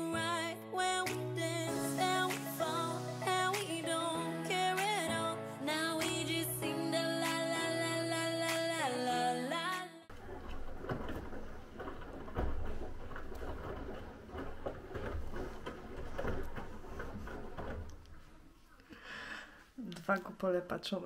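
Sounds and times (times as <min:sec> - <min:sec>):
music: 0:00.0 - 0:10.1
washing machine drum rumbling: 0:10.1 - 0:18.4
water moving: 0:10.1 - 0:19.7.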